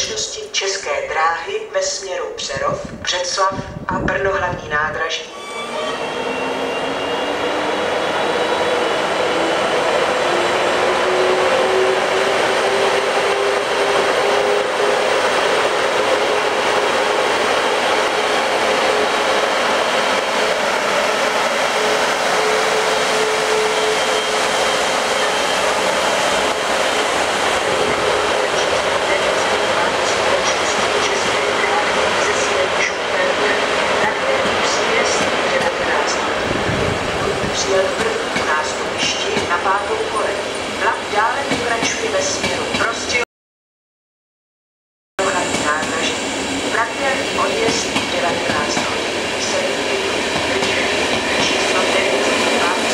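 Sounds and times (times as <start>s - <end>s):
electric locomotives passing: 4.1s - 43.2s, 45.2s - 52.9s.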